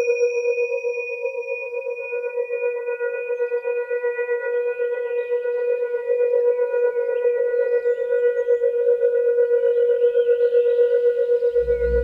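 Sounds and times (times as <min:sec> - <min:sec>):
singing bowl drone: 0:00.0 - 0:12.0.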